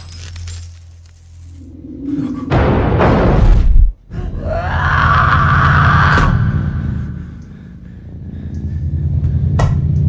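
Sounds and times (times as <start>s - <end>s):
low background drone: 1.5s - 10.0s.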